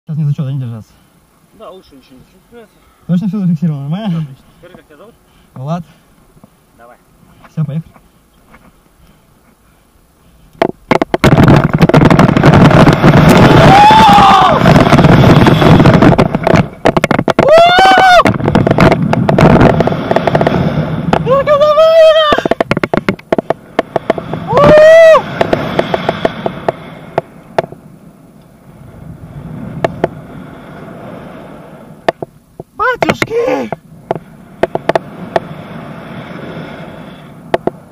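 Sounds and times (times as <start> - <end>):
wind rushing over microphone: 10.4 - 37.9
person yelling: 13.5 - 14.7, 17.4 - 18.3, 21.2 - 22.6, 24.5 - 25.3, 32.8 - 33.8.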